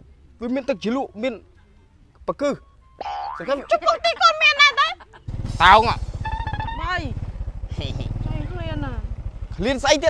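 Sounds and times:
people talking: 0:03.4 - 0:05.0, 0:05.6 - 0:09.0, 0:09.6 - 0:10.0
small engine running: 0:05.3 - 0:10.0.

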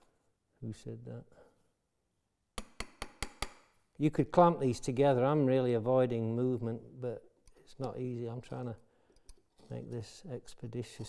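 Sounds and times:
hand tools tapping on wood: 0:02.6 - 0:03.6.

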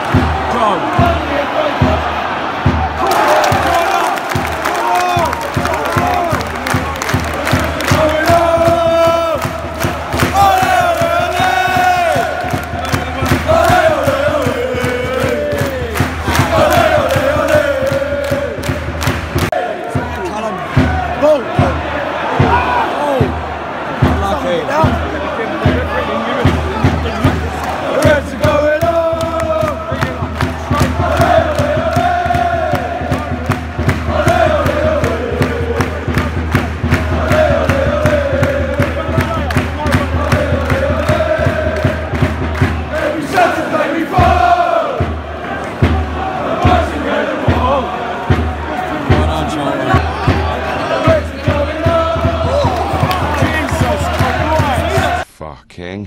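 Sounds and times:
football crowd singing a chant: 0:00.0 - 0:55.2
fast rhythmic clapping: 0:03.0 - 0:21.0, 0:26.4 - 0:47.3, 0:51.1 - 0:55.2.

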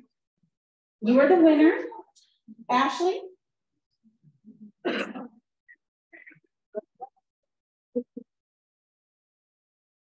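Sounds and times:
person clearing throat: 0:04.8 - 0:05.5.

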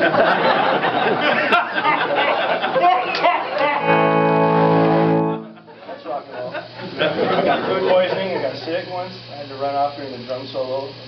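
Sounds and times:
electric guitar chord: 0:03.8 - 0:05.8.

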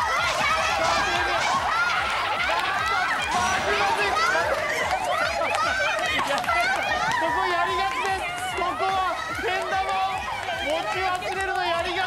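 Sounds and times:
young women shouting: 0:00.0 - 0:12.0.

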